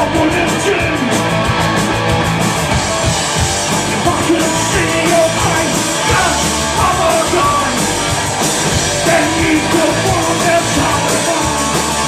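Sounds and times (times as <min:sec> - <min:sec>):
bass guitar: 0:00.0 - 0:12.0
drums with cymbal strokes: 0:00.0 - 0:12.0
electric guitar: 0:00.0 - 0:12.0.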